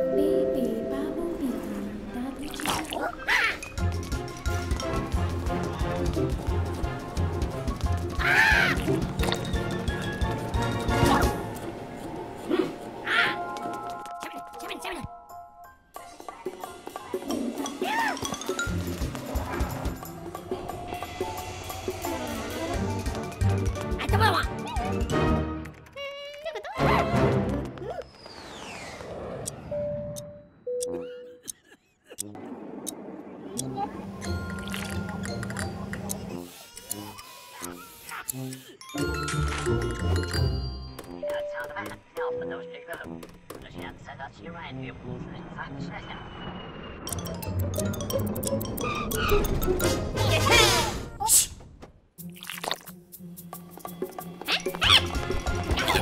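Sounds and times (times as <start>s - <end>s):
background music: 0.0s - 2.6s, 3.2s - 27.8s, 33.6s - 46.0s, 47.1s - 51.3s, 52.2s - 56.0s
squishy dripping cartoon effects: 2.4s - 3.3s, 34.5s - 38.8s, 52.2s - 53.0s
falling whistle-like glide: 28.1s - 29.7s
cartoon music: 54.2s - 56.0s.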